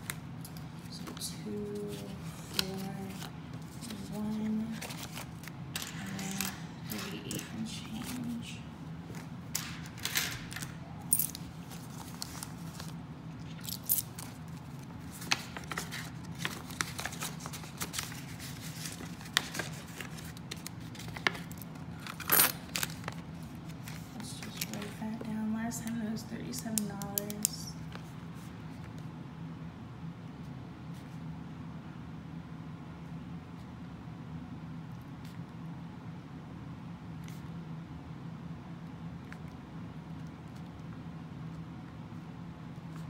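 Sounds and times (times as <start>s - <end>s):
banknotes rustling and snapping: 0.0s - 8.4s, 9.1s - 28.1s.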